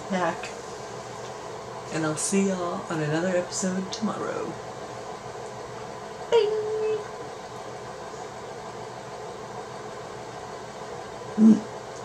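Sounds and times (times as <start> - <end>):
faint hum: 0.0 - 12.0
room hiss: 0.0 - 12.0.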